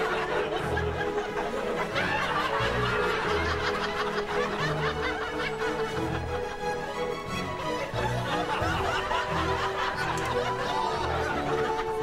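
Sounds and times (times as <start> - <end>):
laugh track chuckling: 0.0 - 6.6, 7.7 - 12.0
light background music: 0.0 - 12.0.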